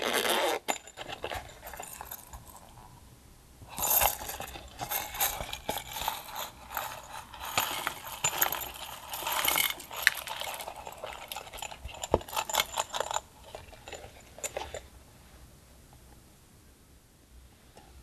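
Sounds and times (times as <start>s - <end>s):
zip rasp: 0.0s - 1.9s
scratchy rubbing of purse: 0.0s - 2.8s, 3.7s - 14.9s.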